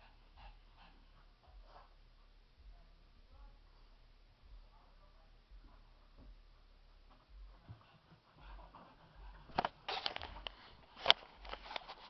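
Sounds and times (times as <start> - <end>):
dog breathing: 0.0 - 2.0
soft low thumps: 0.2 - 9.6.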